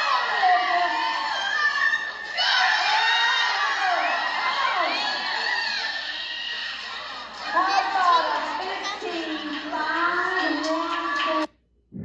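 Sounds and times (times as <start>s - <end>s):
spectators cheering and shouting: 0.0s - 7.6s.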